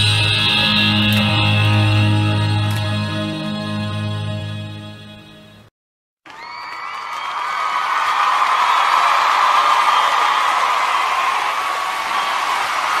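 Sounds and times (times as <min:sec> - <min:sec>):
crowd cheering and applause: 0:06.2 - 0:13.0.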